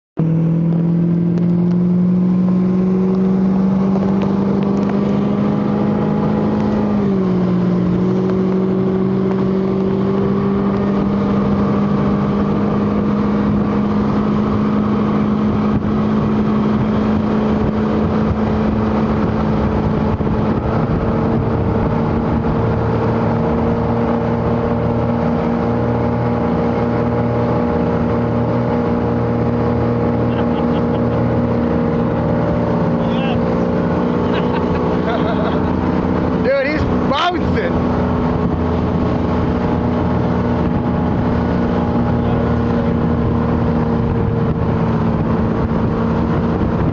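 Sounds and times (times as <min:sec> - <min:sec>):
motorboat engine running: 0:00.2 - 0:46.9
boat wake rushing: 0:02.3 - 0:46.9.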